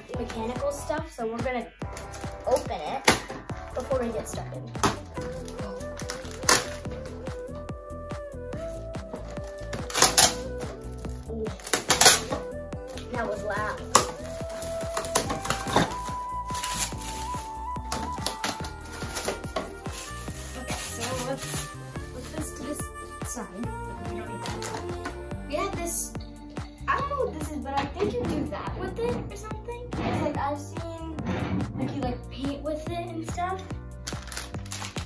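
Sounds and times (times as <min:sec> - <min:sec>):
background music: 0:00.0 - 0:35.0
plastic wrap crackling: 0:01.8 - 0:07.7, 0:08.6 - 0:23.1, 0:24.2 - 0:25.1, 0:34.0 - 0:35.0.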